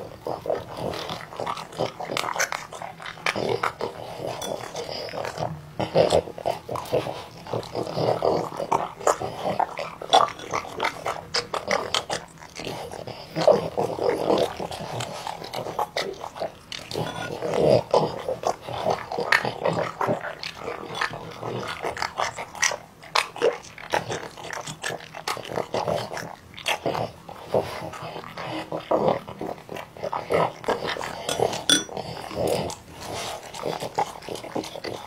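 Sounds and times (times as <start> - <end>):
dog chewing and smacking: 0.1 - 35.0.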